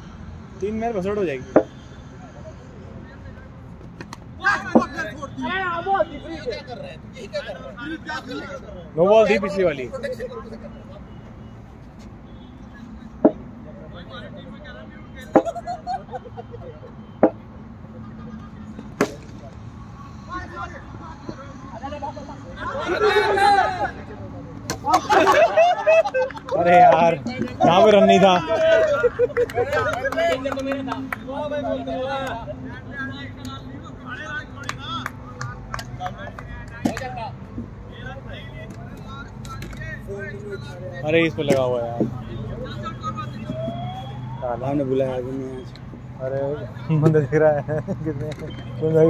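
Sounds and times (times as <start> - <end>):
players calling out: 0.6 - 49.0
cricket bat striking ball: 18.9 - 19.4
distant siren rising in pitch: 43.0 - 45.7.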